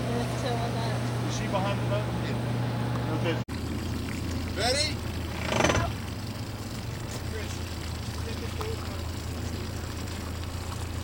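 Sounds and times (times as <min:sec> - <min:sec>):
boat engine idling: 0:00.0 - 0:11.0.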